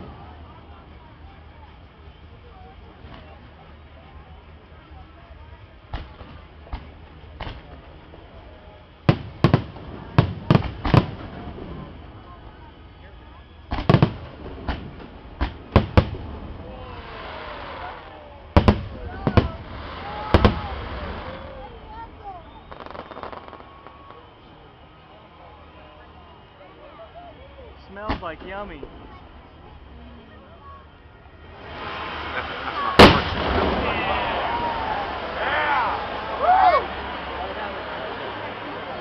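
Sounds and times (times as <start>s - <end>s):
crackling hiss of fireworks: 0.0s - 39.0s
fireworks booming: 5.6s - 24.8s, 27.8s - 29.9s, 31.4s - 39.0s.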